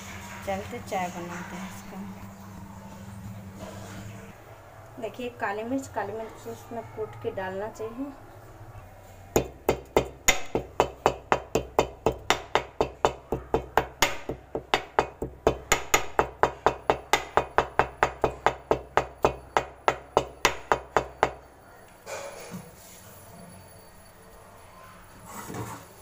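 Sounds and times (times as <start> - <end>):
peppercorns being pounded: 9.3 - 21.5.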